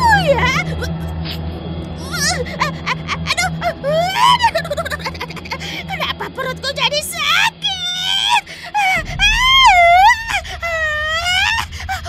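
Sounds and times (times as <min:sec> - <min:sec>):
background music: 0:00.0 - 0:12.0
cartoon witch wailing: 0:02.0 - 0:06.4, 0:07.2 - 0:12.0.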